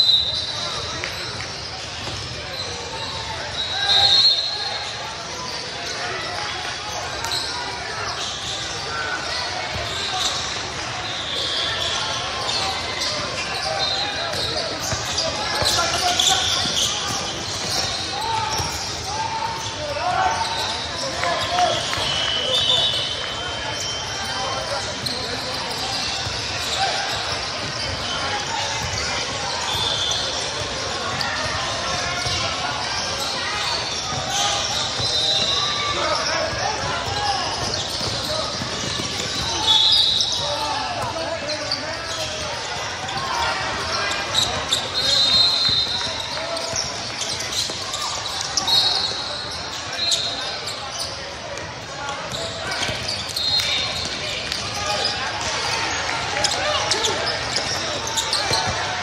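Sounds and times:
sneaker squeaks: 0.0 - 59.0.

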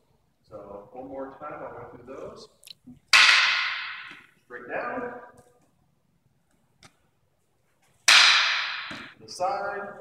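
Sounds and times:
wooden canes clacking together: 3.0 - 4.4, 7.9 - 9.2.

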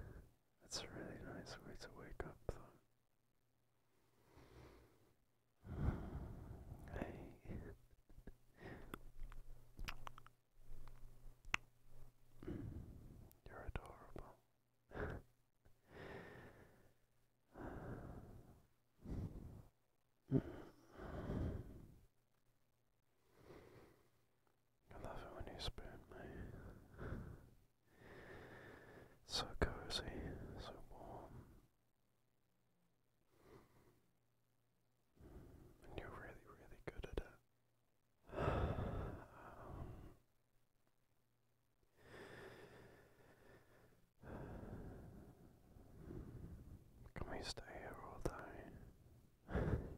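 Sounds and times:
man whispering: 0.0 - 3.0, 6.7 - 10.2, 12.4 - 15.3, 24.9 - 26.9, 29.2 - 31.6, 35.8 - 37.5, 47.0 - 49.0
man breathing and sighing: 4.1 - 9.1, 12.4 - 13.3, 14.9 - 22.0, 26.3 - 29.2, 38.2 - 40.2, 41.9 - 46.8, 49.4 - 49.9
long breath out: 5.6 - 6.8, 12.4 - 13.1, 20.3 - 21.9, 38.3 - 40.2, 42.0 - 46.8, 49.5 - 49.9
mouth clicks: 8.8 - 11.7
lip smacks: 8.9 - 11.7.

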